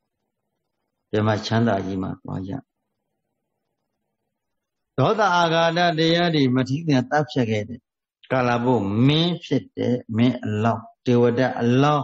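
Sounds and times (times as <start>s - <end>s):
man preaching: 1.2s - 2.7s, 5.0s - 12.0s.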